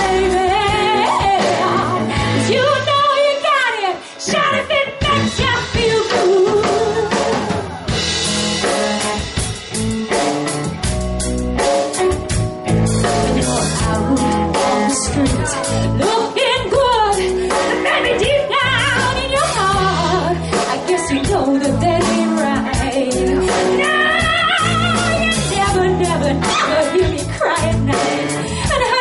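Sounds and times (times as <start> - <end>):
woman singing: 0.0 - 7.8, 13.8 - 29.0
live pop-rock band: 0.0 - 29.0.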